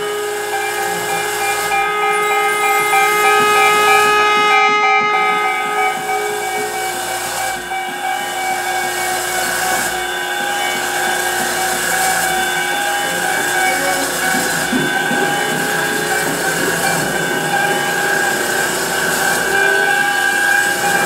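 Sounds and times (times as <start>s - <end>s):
pedal steel guitar tones: 0.0s - 21.0s
steady hiss: 0.0s - 21.0s.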